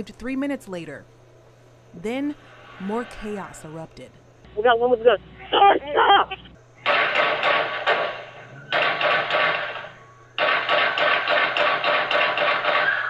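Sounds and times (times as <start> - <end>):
rapid gunfire bursts: 6.9 - 13.0.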